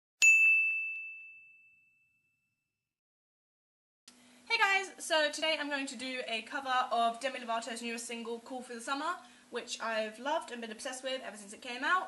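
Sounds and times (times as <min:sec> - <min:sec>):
high bell-like chime: 0:00.2 - 0:02.6.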